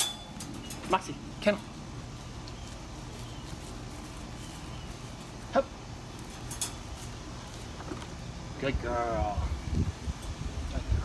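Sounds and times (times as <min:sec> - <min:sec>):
wire crate clinking: 0:00.0 - 0:01.2, 0:06.2 - 0:07.2.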